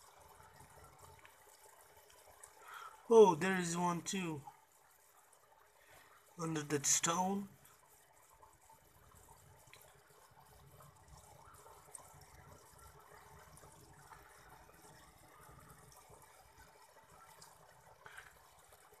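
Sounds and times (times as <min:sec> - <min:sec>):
aquarium filter water trickling: 0:00.0 - 0:19.0
light ticks: 0:01.0 - 0:02.6, 0:09.2 - 0:10.0.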